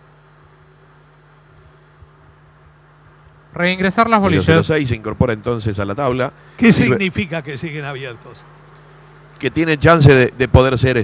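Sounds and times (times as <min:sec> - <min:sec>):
light hiss: 0:00.0 - 0:10.6
low steady hum: 0:00.0 - 0:11.0.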